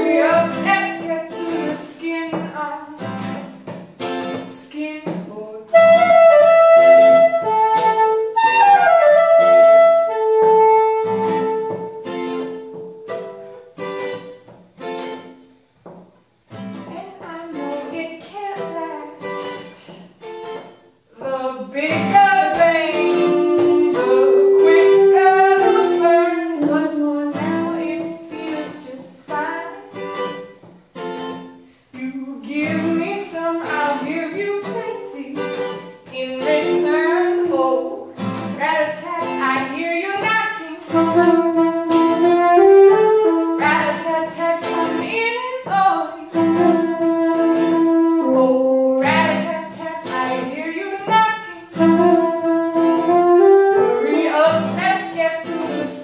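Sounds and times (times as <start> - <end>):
soprano saxophone melody: 0.0 - 1.7, 5.6 - 14.2, 21.9 - 30.4, 36.4 - 56.0
acoustic guitar strumming: 0.0 - 56.0.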